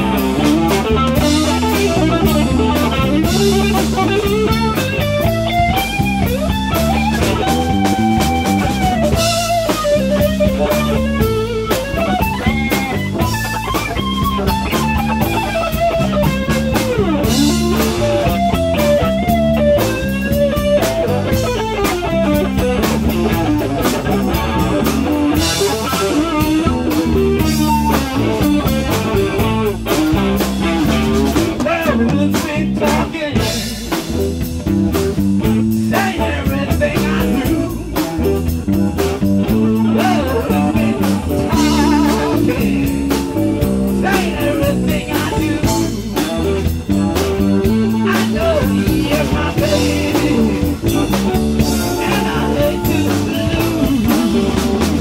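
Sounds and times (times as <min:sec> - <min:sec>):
electric guitar solo: 0:00.0 - 0:36.4, 0:37.1 - 0:55.0
drums: 0:00.0 - 0:55.0
electric bass: 0:00.0 - 0:55.0.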